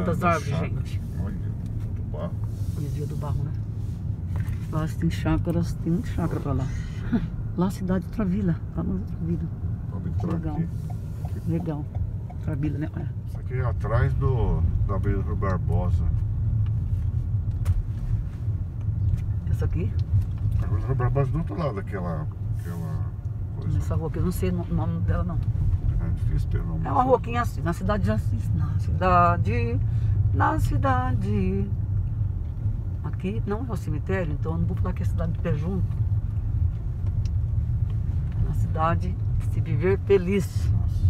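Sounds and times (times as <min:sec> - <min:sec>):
car driving rumble from inside: 0:00.0 - 0:41.0.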